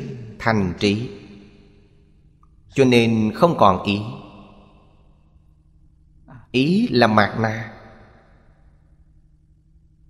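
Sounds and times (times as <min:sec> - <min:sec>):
man speaking: 0:00.0 - 0:01.2, 0:02.7 - 0:04.3, 0:06.3 - 0:07.8
faint low background hum: 0:00.0 - 0:10.0.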